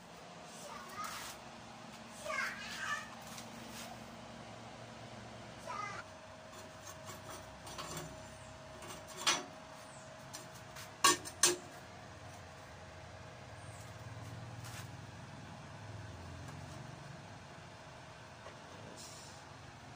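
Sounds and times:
metal tank clanking on workbench: 0:08.8 - 0:09.5, 0:11.0 - 0:11.7.

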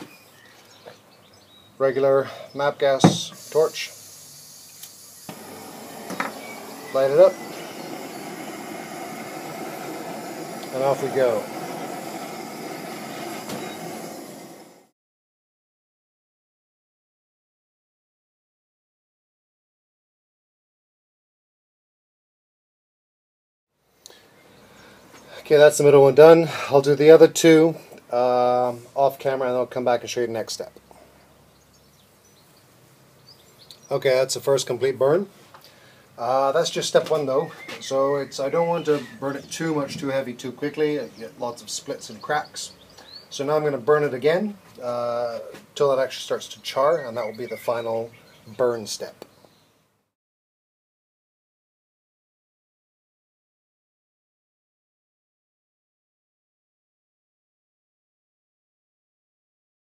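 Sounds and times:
man speaking: 0:01.8 - 0:04.0, 0:06.9 - 0:07.4, 0:10.7 - 0:11.5, 0:25.4 - 0:30.8, 0:36.2 - 0:42.8, 0:43.4 - 0:49.2
faint high chirps: 0:02.4 - 0:09.8, 0:12.1 - 0:14.2
gas torch hissing: 0:02.8 - 0:14.9.

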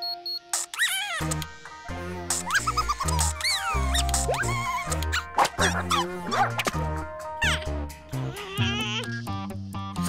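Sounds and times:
cartoon creature squeaks and chirps: 0:00.7 - 0:01.4, 0:02.5 - 0:05.2, 0:08.2 - 0:09.2.

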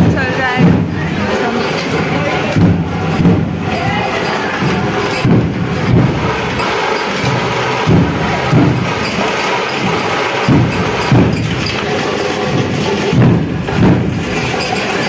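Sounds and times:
deep drum strokes: 0:00.0 - 0:15.0
higher percussion: 0:00.0 - 0:15.0
street noise: 0:00.0 - 0:15.0.

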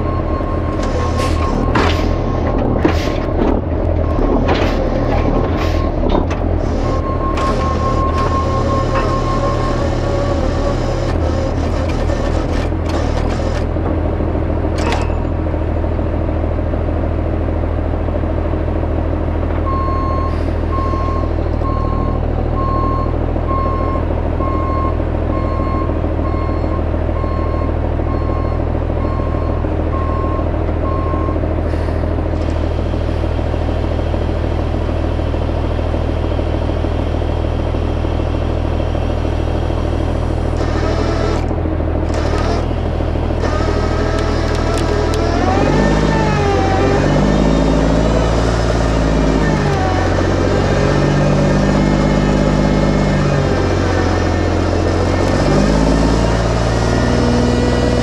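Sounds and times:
diesel truck engine running: 0:00.0 - 0:58.0
reverse alarm beeping: 0:06.8 - 0:10.0.

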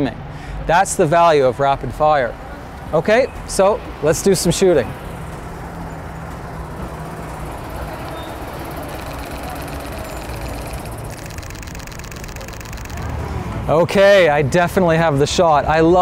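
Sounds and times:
street noise: 0:00.0 - 0:16.0
car engine running: 0:05.0 - 0:13.7.

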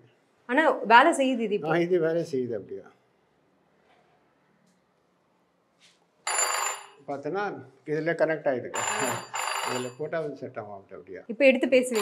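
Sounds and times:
telephone bells ringing: 0:06.3 - 0:07.1, 0:08.8 - 0:10.0.

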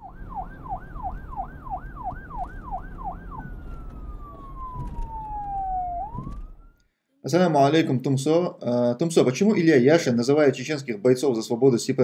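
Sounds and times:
low rumble: 0:00.0 - 0:06.8
siren yelping and wailing: 0:00.0 - 0:06.9.

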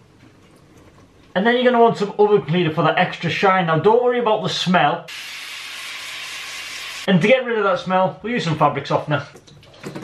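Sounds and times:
aerosol can spraying hiss: 0:05.1 - 0:07.1.

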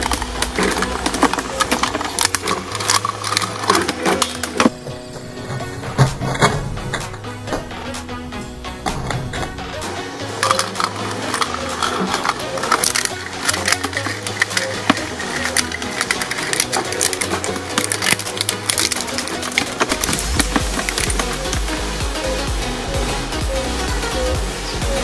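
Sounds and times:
shredder crunching plastic: 0:00.0 - 0:07.2, 0:10.3 - 0:21.8
background music with beat: 0:00.0 - 0:25.0.

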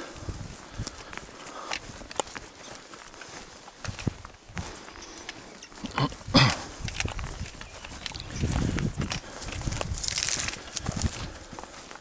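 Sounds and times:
footsteps on rocky ground: 0:00.0 - 0:12.0
trekking poles clicking on rock: 0:00.7 - 0:12.0.

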